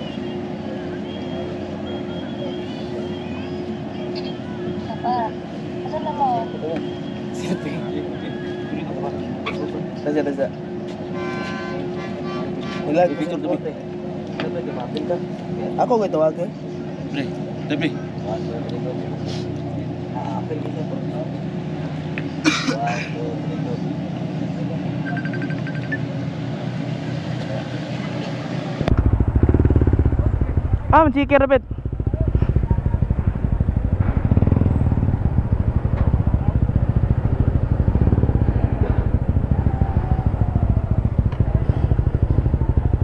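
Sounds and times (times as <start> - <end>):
boat engine drone: 0.0 - 22.4, 23.2 - 43.0
motorcycle engine idling: 28.8 - 43.0.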